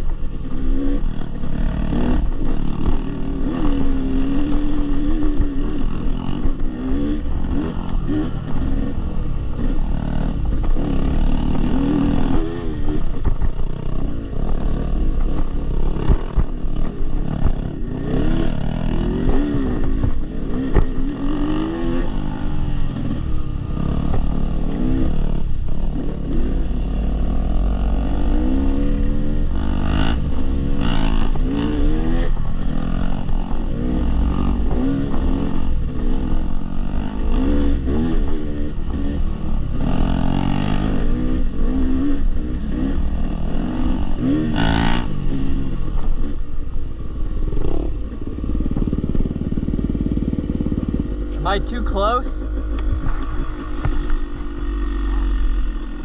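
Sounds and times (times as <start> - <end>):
dirt bike engine revving: 0.0 - 56.0.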